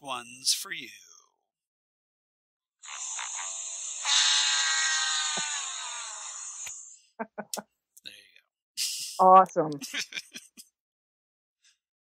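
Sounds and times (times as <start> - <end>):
buzzy horn-like comic sound effect: 2.8 - 6.7.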